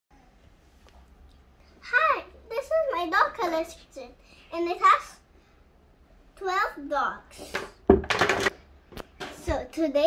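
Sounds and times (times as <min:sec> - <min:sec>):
girl speaking: 0:01.8 - 0:05.3, 0:06.4 - 0:07.7, 0:09.3 - 0:10.0.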